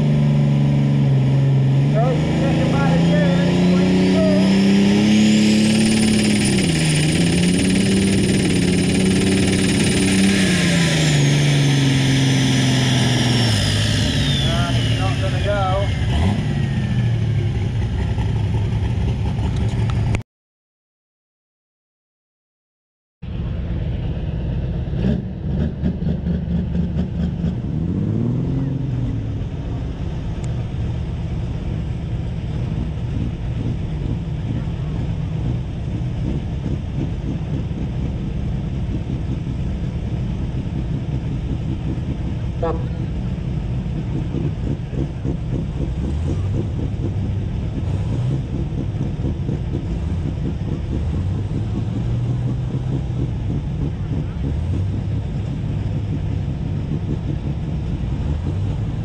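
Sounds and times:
tractor diesel engines revving: 0:00.0 - 0:20.2, 0:23.3 - 0:59.0.

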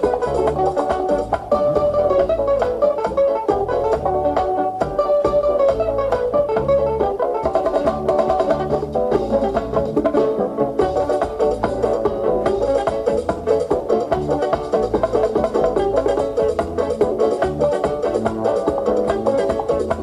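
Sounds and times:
lead guitar picking runs: 0:00.0 - 0:20.0
pulsing bass line: 0:00.0 - 0:20.0.

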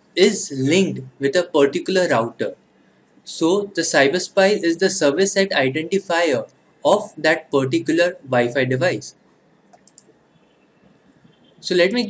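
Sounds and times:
computer mouse clicks: 0:09.6 - 0:10.2.

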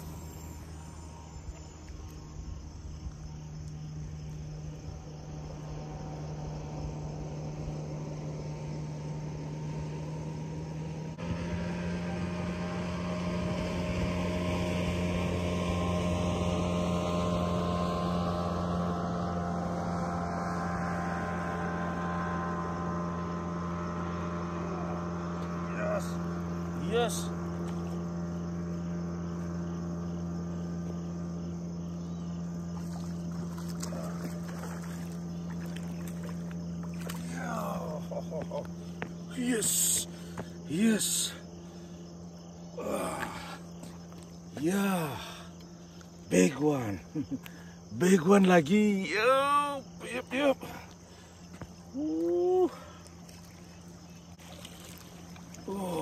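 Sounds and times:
low steady hum: 0:00.0 - 0:56.0
motorboat engine droning: 0:00.0 - 0:56.0
water lapping: 0:23.9 - 0:47.9, 0:50.4 - 0:56.0.

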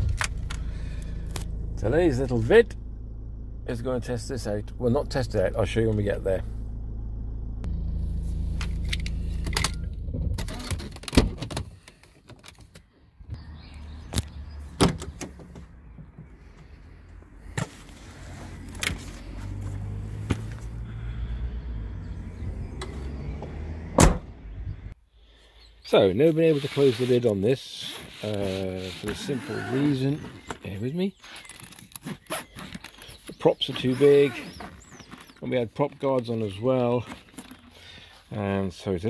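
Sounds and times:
engine idling rumble: 0:00.0 - 0:10.6, 0:13.2 - 0:25.0.

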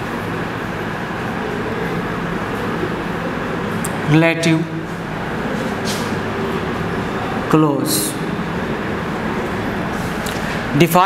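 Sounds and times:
person speaking: 0:03.8 - 0:08.3, 0:10.2 - 0:11.0.

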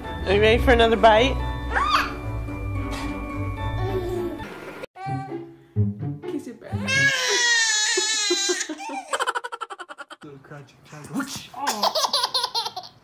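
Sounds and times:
baby crying: 0:05.0 - 0:05.5, 0:06.7 - 0:10.2
baby giggling: 0:07.0 - 0:10.2, 0:11.6 - 0:13.0.

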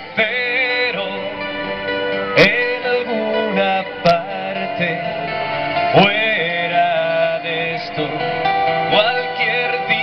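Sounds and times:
man singing into a microphone: 0:00.0 - 0:10.0
strummed acoustic guitar: 0:00.0 - 0:10.0.

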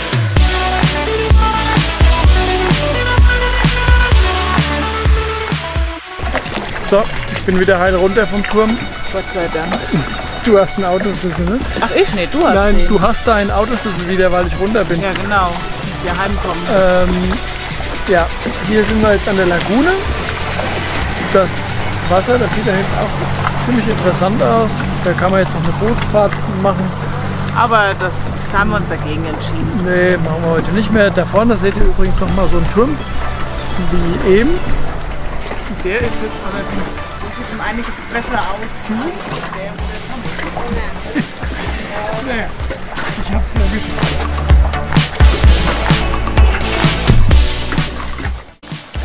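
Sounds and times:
bass drum hits: 0:00.0 - 0:06.6, 0:42.6 - 0:49.0
outboard motor running: 0:00.0 - 0:49.0
sustained bass line: 0:00.0 - 0:49.0
snare-like strokes: 0:44.0 - 0:49.0.

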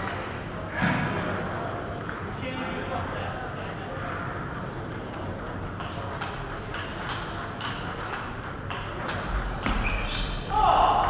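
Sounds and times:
murmur of voices in hall: 0:00.0 - 0:11.0.

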